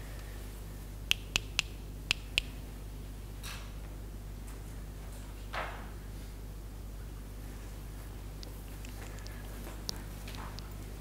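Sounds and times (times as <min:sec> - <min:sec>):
sharp clicks: 0:01.1 - 0:02.6.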